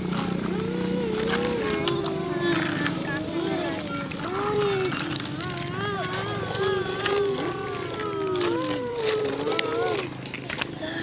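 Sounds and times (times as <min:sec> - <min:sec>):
child making engine noises: 0:00.0 - 0:11.0.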